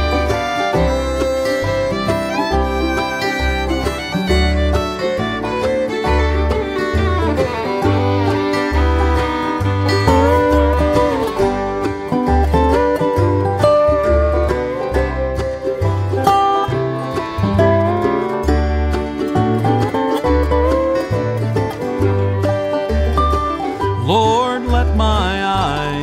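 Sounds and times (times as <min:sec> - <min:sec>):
banjo: 0:00.0 - 0:26.0
bass notes on the beat: 0:00.0 - 0:26.0
fiddle with sliding notes: 0:00.0 - 0:26.0
guitar: 0:00.0 - 0:26.0.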